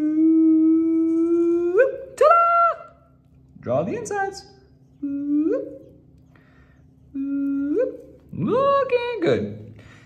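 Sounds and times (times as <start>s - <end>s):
man humming: 0.0s - 1.9s, 5.0s - 5.8s, 7.1s - 8.2s.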